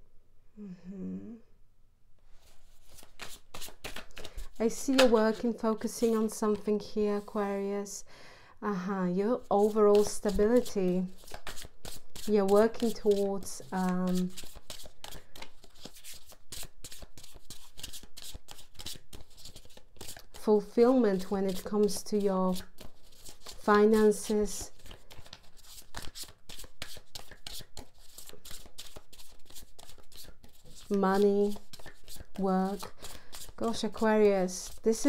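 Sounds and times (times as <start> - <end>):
cards being shuffled: 2.4 - 7.4, 9.6 - 20.4, 21.2 - 34.0.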